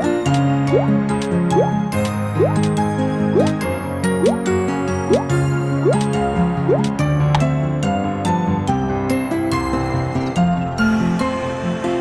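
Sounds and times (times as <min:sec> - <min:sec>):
playful cartoon background music: 0:00.0 - 0:12.0.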